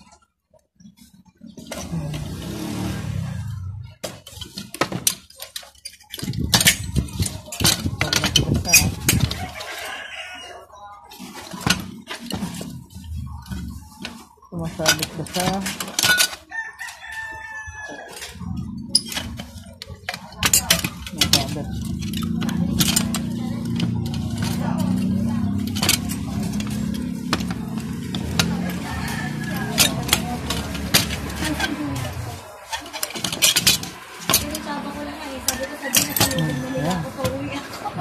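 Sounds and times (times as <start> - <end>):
handling noise: 0.0 - 38.0
rooster crowing: 9.4 - 10.7, 16.4 - 18.4, 27.6 - 32.0, 35.4 - 37.6.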